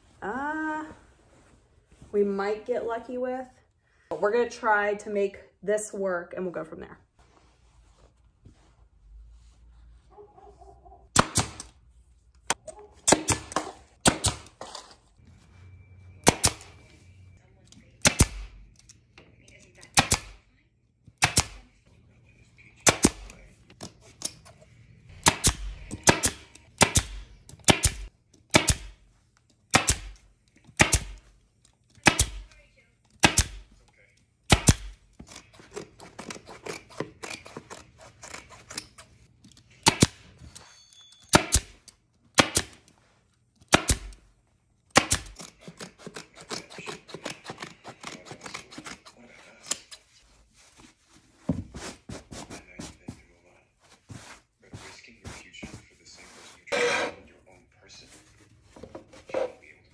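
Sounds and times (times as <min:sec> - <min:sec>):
scissors cutting thick fabric: 0:34.6 - 0:39.3, 0:45.0 - 0:50.0.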